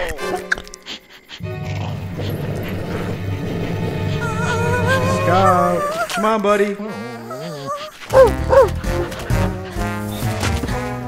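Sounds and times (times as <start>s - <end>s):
tense background music: 0.0s - 6.3s, 8.0s - 11.0s
cartoon dog growling: 1.4s - 9.1s.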